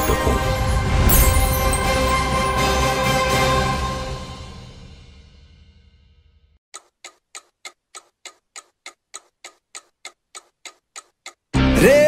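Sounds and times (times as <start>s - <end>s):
clock-like ticking: 6.8s - 11.5s
loud music with singing voice: 11.6s - 12.0s.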